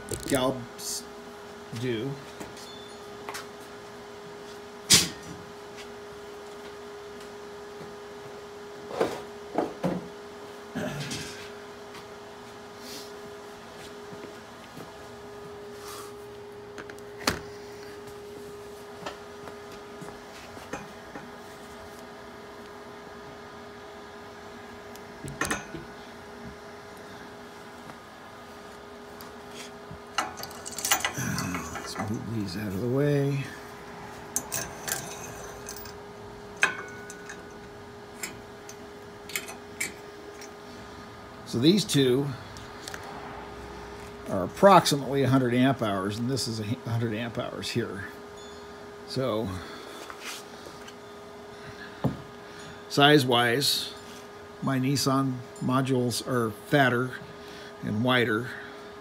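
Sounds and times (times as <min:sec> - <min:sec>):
steady hum: 0:00.0 - 0:59.0
hard parts clicking and clinking: 0:30.1 - 0:32.2, 0:34.3 - 0:36.0, 0:36.6 - 0:40.6.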